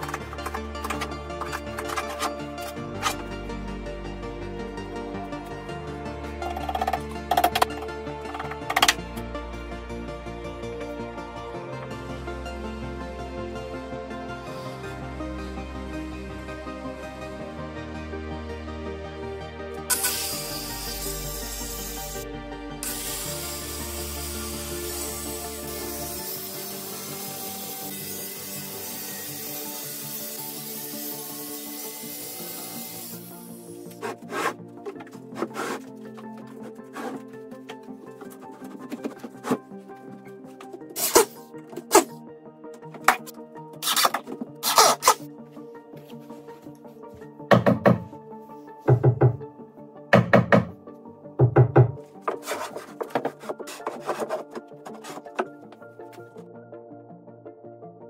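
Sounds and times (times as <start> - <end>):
circular saw cutting board: 0.0 - 3.2, 19.9 - 22.2, 22.8 - 37.2, 52.3 - 55.6
background music: 0.0 - 58.0
wood sheet scraping on timber: 33.9 - 37.4, 38.2 - 39.7, 52.2 - 55.6
sharp knocks: 47.5 - 48.1, 50.2 - 50.7.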